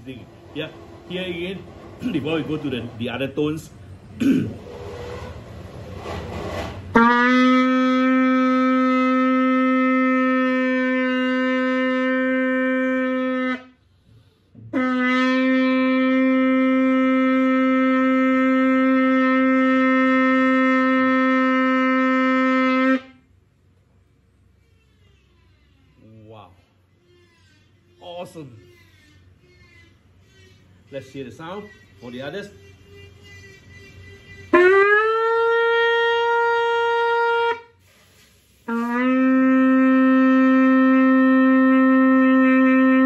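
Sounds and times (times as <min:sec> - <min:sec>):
shofar horn blasts: 0:06.9 - 0:13.8, 0:14.7 - 0:23.2, 0:30.9 - 0:37.8, 0:38.6 - 0:43.0.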